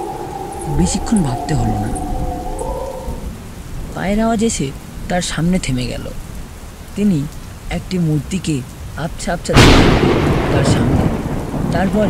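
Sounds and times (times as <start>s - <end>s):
low thunder rumble: 0.0s - 6.2s, 9.5s - 12.0s
steady rain: 0.0s - 12.0s.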